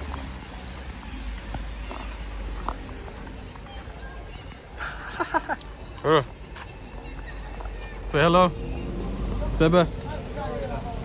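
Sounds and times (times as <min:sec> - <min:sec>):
man laughing: 0:04.8 - 0:05.6.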